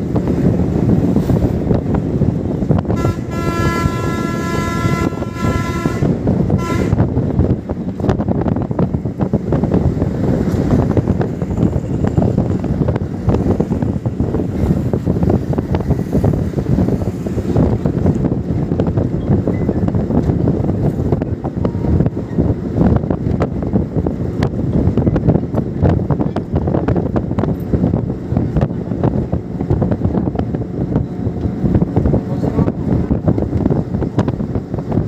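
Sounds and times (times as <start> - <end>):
bus engine and road noise: 0.0 - 35.0
multi-tone horn blaring: 2.9 - 7.2
short horn toot: 3.0 - 7.1.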